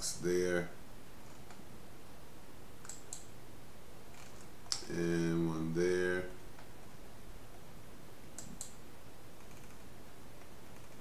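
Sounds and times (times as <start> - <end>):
low room noise hiss: 0.0 - 11.0
computer mouse clicks: 1.2 - 1.6, 2.8 - 3.3, 8.4 - 8.8, 10.4 - 11.0.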